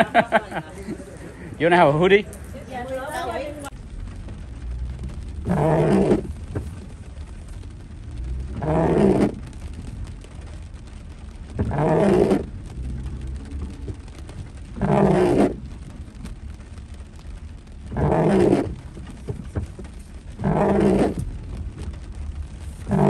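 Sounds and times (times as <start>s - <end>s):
windshield wipers juddering on glass: 2.0s - 23.0s.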